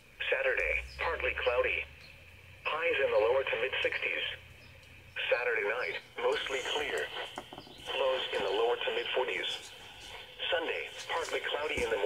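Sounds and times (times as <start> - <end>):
voice over radio: 0.2 - 1.9, 2.6 - 4.4, 5.2 - 12.0.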